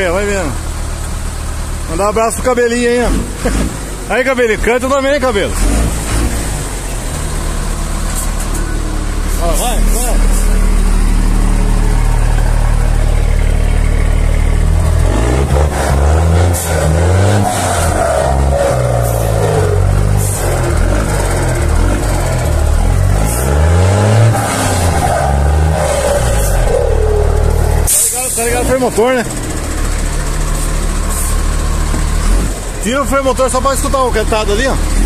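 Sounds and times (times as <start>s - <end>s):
diesel truck engine revving: 0.0s - 35.0s
turbocharger whistle: 15.8s - 20.5s, 23.3s - 28.8s.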